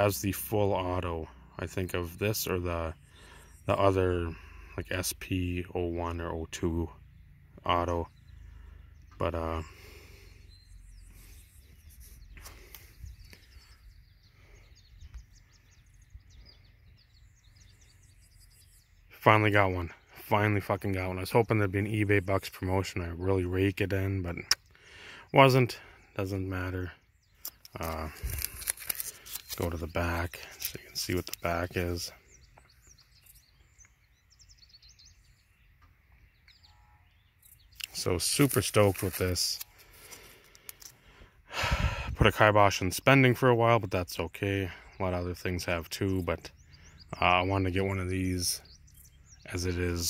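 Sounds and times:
small birds chirping: 0.0 - 50.0.

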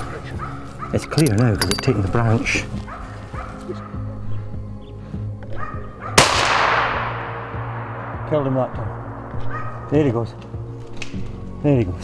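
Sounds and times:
dog barking: 0.1 - 1.2, 2.8 - 4.4, 5.4 - 6.2, 9.4 - 9.9
loud rifle shot with echo: 6.2 - 9.5.

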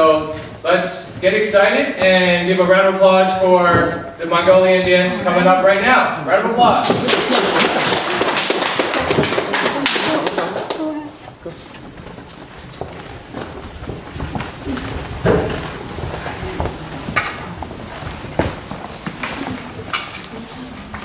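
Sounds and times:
footsteps on wooden floor: 0.0 - 5.8, 8.8 - 21.0
audience applauding: 6.8 - 11.1.

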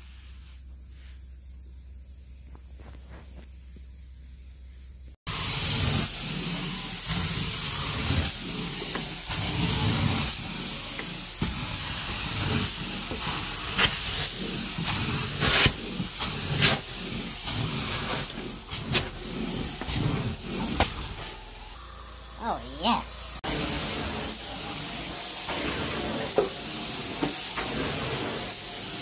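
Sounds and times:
carpet extractor spraying and sucking: 5.3 - 21.8, 23.3 - 29.0.

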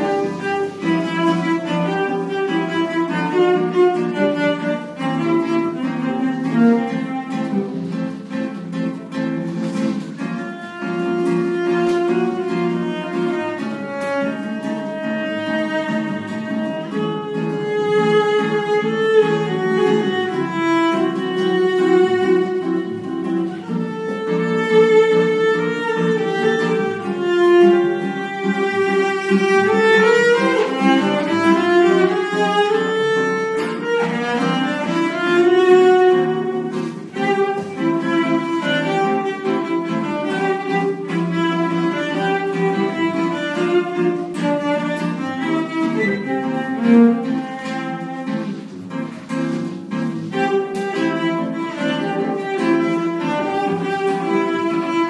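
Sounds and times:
bowed cello melody: 0.0 - 55.0
classical guitar plucked chords: 0.0 - 55.0.

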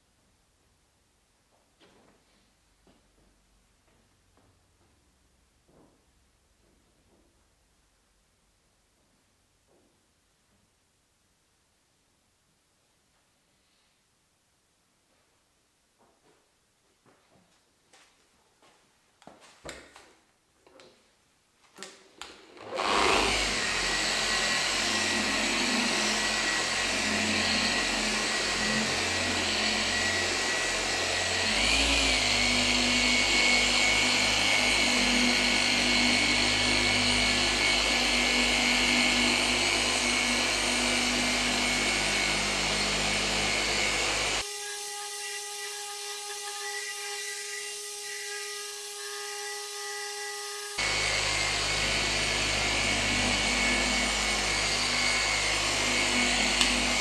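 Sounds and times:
polisher motor humming: 22.5 - 57.0.

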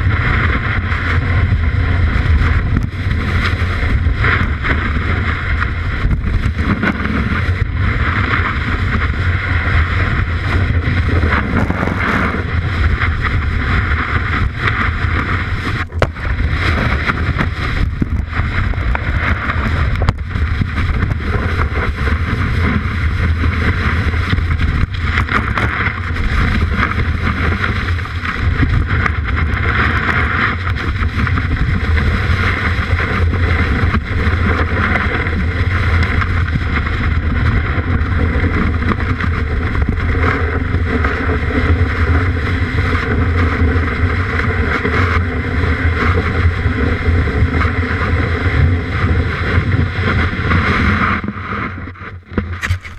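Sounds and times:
snowboard scraping over snow: 0.0 - 52.9
snow spraying against camera: 9.7 - 14.4.

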